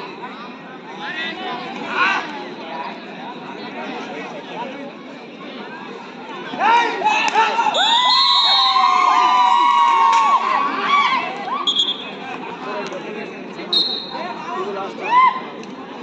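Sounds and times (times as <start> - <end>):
crowd shouting and cheering: 6.0 - 16.0.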